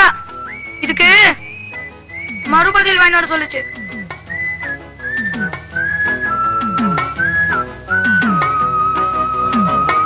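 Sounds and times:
background music with drums: 0.0 - 10.0
person whistling a tune: 0.2 - 2.8, 3.4 - 10.0.

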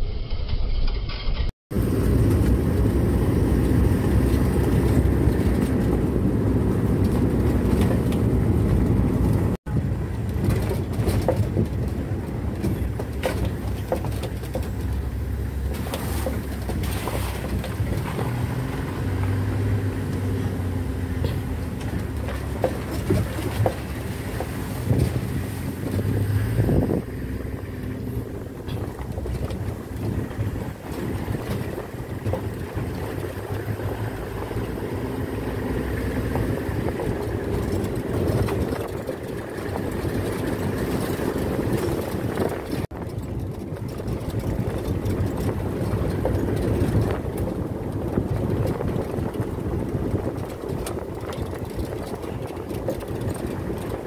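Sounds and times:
engine and road rumble: 0.0 - 54.0
bodywork rattling: 1.8 - 54.0.

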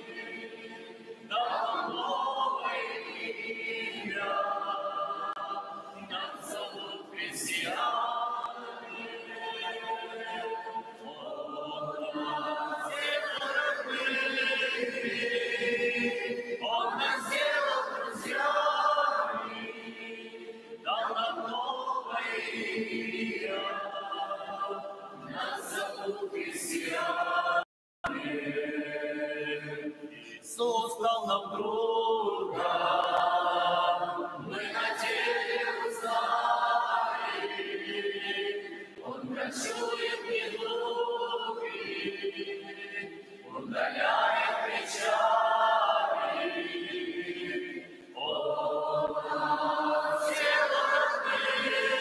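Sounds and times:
congregation and choir singing hymn: 0.0 - 52.0.

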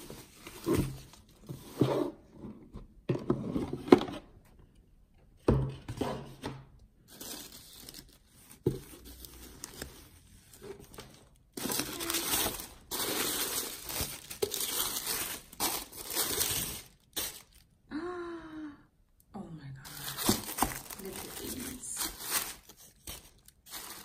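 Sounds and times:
tissue paper crinkling: 7.1 - 17.7, 19.8 - 24.0.

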